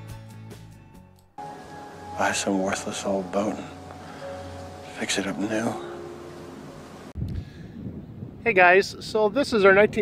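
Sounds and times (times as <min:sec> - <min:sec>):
wind buffeting microphone: 0:06.6 - 0:10.0.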